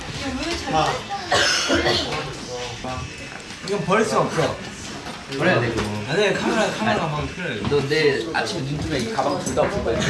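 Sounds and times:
men talking: 0:00.8 - 0:10.0
short cough: 0:01.3 - 0:02.2.

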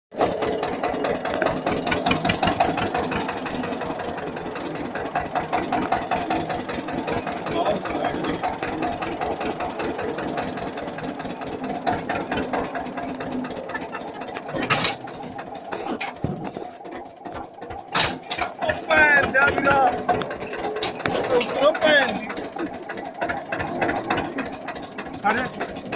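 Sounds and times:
vehicle engine running: 0:00.1 - 0:25.9.

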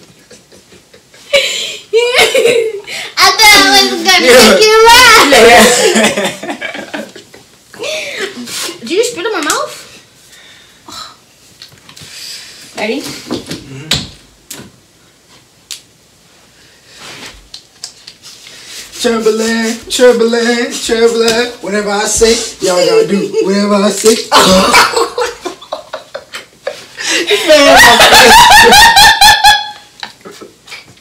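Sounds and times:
woman laughing hard: 0:00.2 - 0:02.9, 0:24.3 - 0:30.0.

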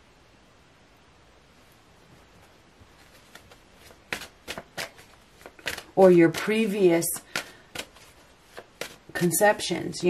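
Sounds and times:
cards being shuffled: 0:02.3 - 0:09.6
sharp card slaps: 0:03.3 - 0:09.0.

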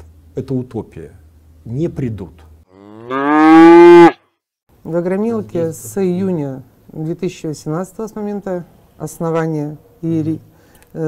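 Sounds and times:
cow mooing: 0:02.7 - 0:04.2.

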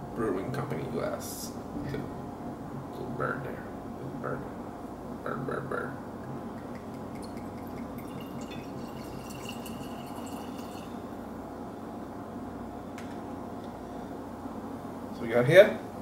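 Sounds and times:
liquid pouring into a glass: 0:06.6 - 0:11.2.

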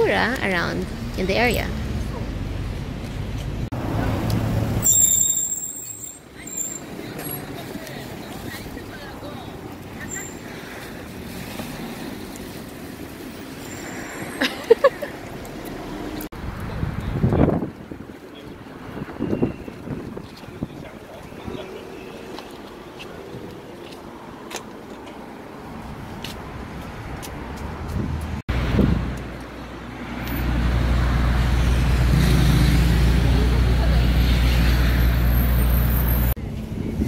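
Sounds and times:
voices: 0:00.0 - 0:02.4, 0:05.3 - 0:11.1, 0:18.1 - 0:24.1
passing traffic: 0:00.0 - 0:37.0.

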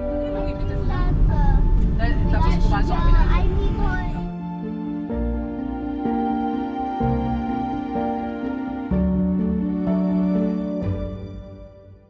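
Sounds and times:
car driving rumble: 0:00.0 - 0:04.3.

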